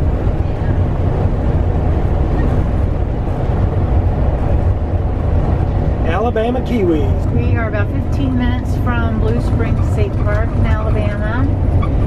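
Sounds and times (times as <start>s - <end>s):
engine and tyre road noise: 0.0s - 12.0s.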